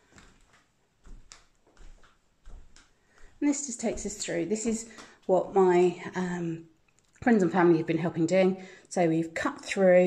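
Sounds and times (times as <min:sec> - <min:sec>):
soft footsteps indoors: 0:00.0 - 0:07.4.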